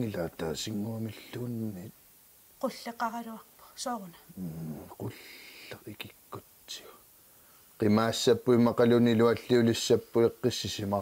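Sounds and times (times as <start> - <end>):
person whispering: 3.6 - 6.0.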